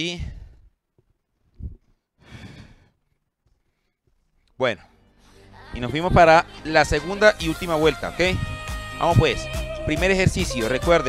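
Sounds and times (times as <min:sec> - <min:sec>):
man sighing: 0:02.2 - 0:03.0.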